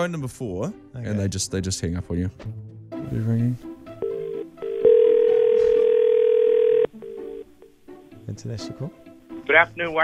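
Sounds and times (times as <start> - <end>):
short telephone tones: 4.0 - 7.5
telephone ring tone: 4.0 - 7.5.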